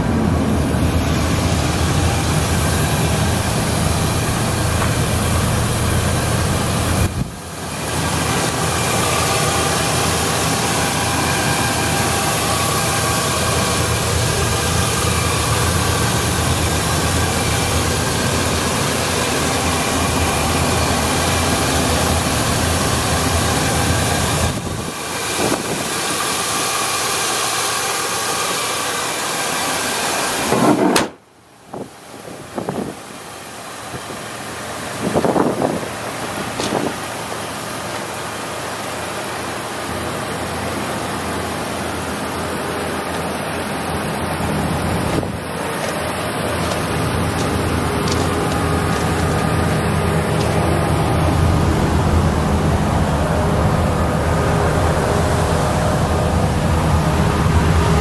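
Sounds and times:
pickup engine idling: 0:00.0 - 0:58.0.

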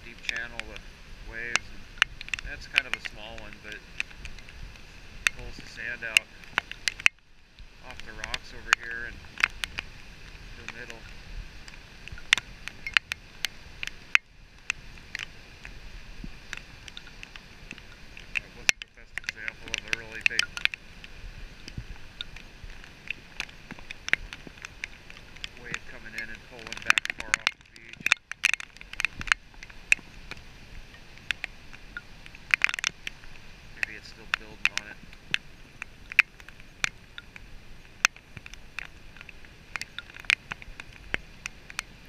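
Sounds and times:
raindrops striking camera: 0:00.0 - 0:42.0
surf washing up beach: 0:00.0 - 0:42.0.

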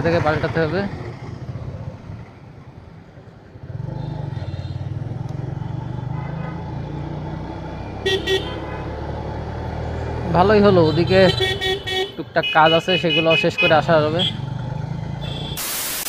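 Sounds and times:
motorcycle horn toot: 0:08.0 - 0:08.6, 0:10.8 - 0:14.4, 0:15.2 - 0:15.6.

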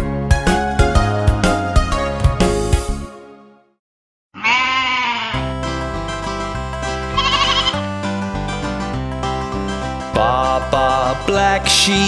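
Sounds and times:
country-style music: 0:00.0 - 0:03.3, 0:05.3 - 0:12.0
sheep bleating: 0:04.4 - 0:05.6, 0:07.1 - 0:07.9.

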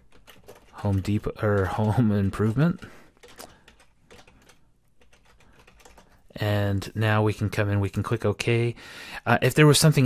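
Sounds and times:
faint keyboard typing: 0:00.0 - 0:06.5.

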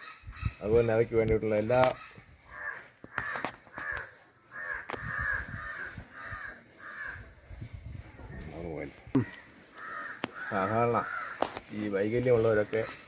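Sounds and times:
crows cawing: 0:01.8 - 0:07.4, 0:09.1 - 0:13.0.

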